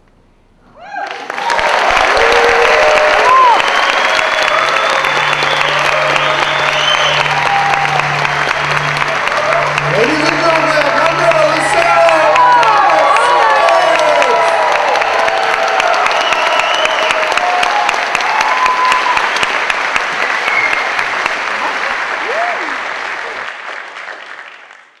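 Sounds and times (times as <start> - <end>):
whoops and shouts: 0.8 - 8.4, 11.8 - 19.4, 22.2 - 22.8
audience clapping: 0.8 - 25.0.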